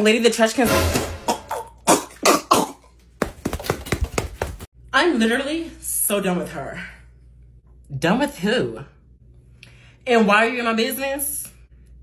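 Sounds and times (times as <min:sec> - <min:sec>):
person coughing: 0:01.2 - 0:03.0.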